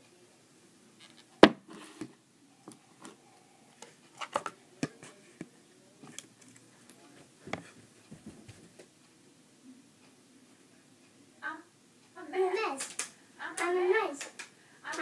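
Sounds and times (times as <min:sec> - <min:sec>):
heavier thumps: 0:01.4 - 0:01.7
footsteps: 0:07.2 - 0:08.9.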